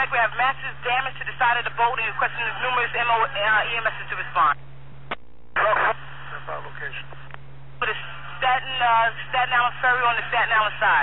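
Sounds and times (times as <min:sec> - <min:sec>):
steady hum: 0:00.0 - 0:11.0
radio squelch click: 0:05.1 - 0:06.0
voice over radio: 0:05.6 - 0:07.2.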